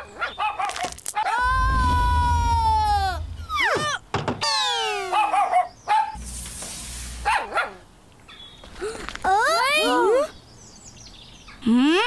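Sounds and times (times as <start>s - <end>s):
rushing noise: 1.4s - 4.0s
cartoon dog barking: 4.8s - 6.1s.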